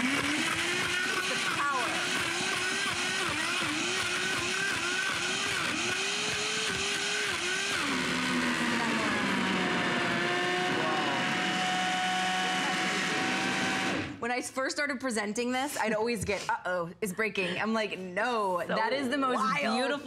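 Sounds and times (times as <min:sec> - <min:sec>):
blender crushing frozen fruit: 0:00.0 - 0:14.2.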